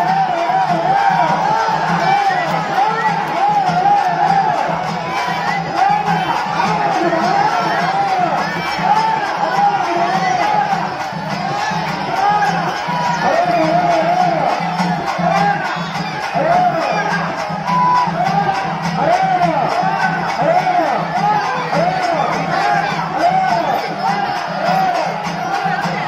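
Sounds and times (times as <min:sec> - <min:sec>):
crowd chatter and cheering: 0:00.0 - 0:26.0
pulsing drum beat: 0:00.0 - 0:26.0.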